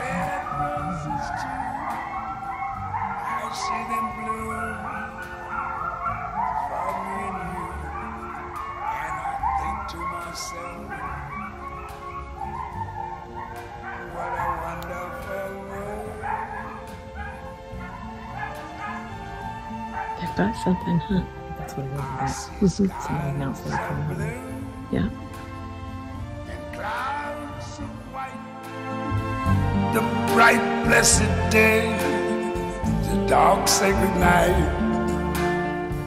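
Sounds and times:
coyotes howling and yipping: 0.0 - 36.0.

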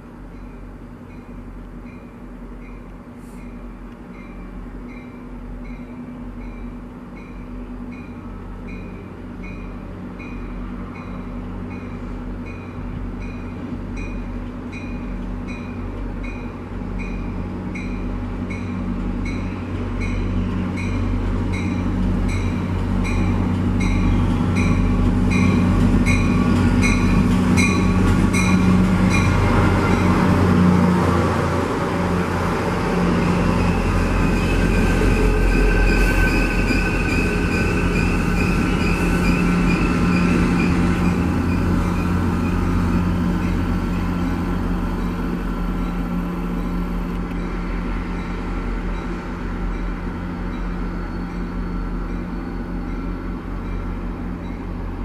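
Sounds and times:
diesel train engine running: 0.0 - 55.0
train wheels squealing: 33.1 - 44.2, 47.4 - 54.8.

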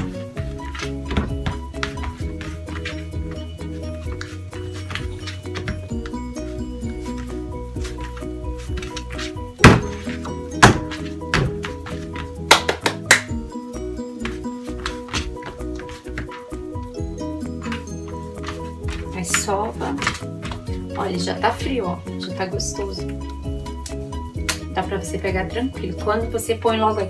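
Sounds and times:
background music: 0.0 - 27.0
dough thumped by hand: 9.6 - 11.8.

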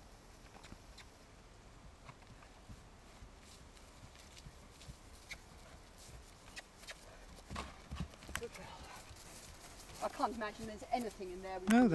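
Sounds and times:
horse hoofbeats on grass: 0.5 - 11.9.

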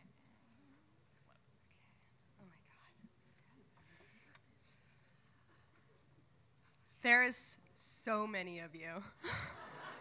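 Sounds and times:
women whispering: 0.0 - 4.3.

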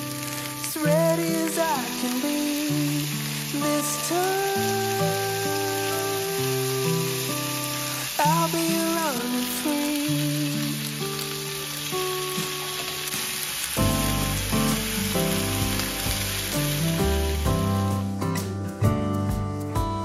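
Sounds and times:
meat sizzling in a pan: 0.0 - 18.4
background music with sustained notes: 12.7 - 19.7.

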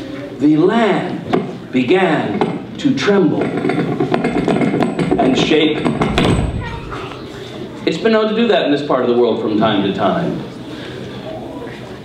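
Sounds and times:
knock on microphone: 5.0 - 7.0
low rumble: 5.1 - 7.2.

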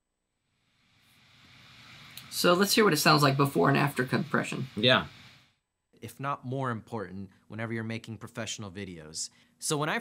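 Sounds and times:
faint room hiss: 0.1 - 10.0.

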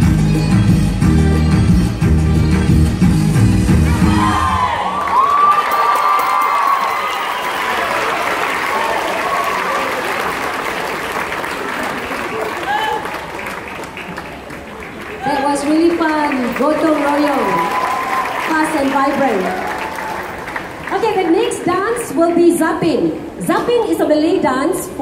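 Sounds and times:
dance music: 0.0 - 5.0
audience applauding and cheering: 2.4 - 21.3.

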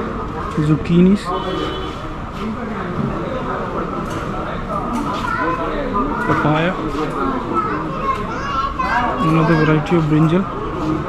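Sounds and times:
high-pitched voices chattering: 3.4 - 11.0.

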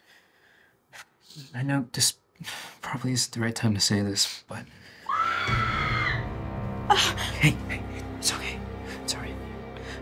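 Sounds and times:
high-pitched scream: 5.1 - 6.3.

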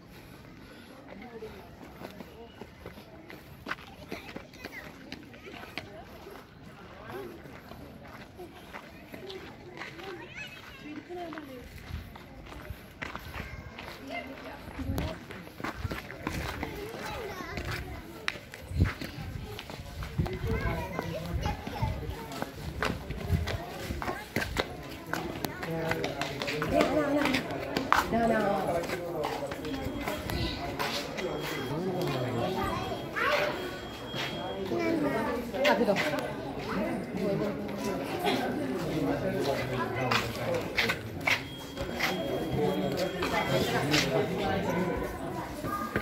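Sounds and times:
children chattering and calling: 0.0 - 46.0
footsteps: 0.0 - 46.0
indistinct voices: 11.5 - 46.0.

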